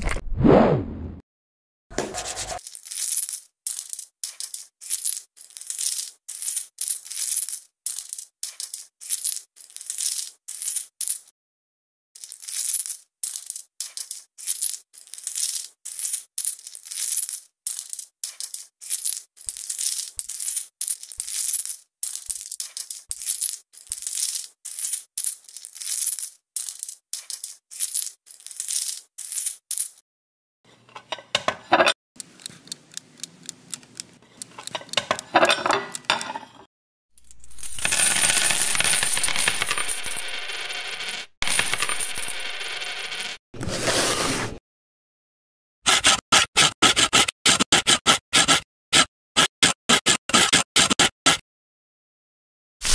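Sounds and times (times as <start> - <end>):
metal coins clinking: 2.3 - 11.3, 12.2 - 30.0, 37.2 - 43.4.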